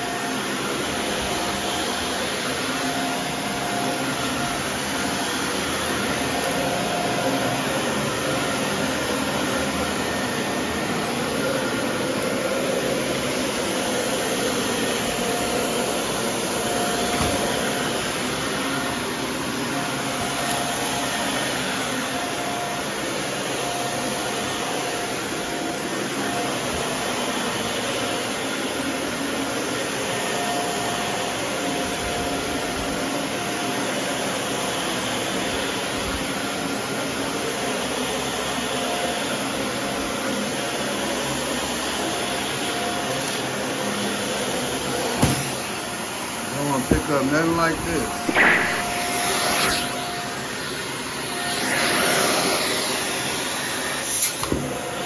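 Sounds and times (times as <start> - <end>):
vacuum cleaner running on carpet: 0.0 - 55.0
faint whine: 47.7 - 50.4.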